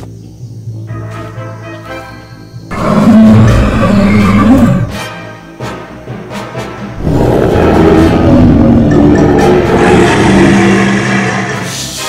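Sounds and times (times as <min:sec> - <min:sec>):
background music: 0:00.0 - 0:12.0
cartoon dinosaur roar: 0:02.7 - 0:05.0, 0:07.0 - 0:12.0.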